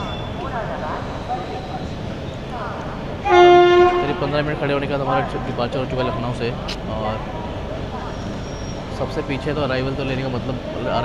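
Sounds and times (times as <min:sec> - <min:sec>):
train rolling rumble: 0:00.0 - 0:11.0
locomotive horn blast: 0:03.2 - 0:04.8.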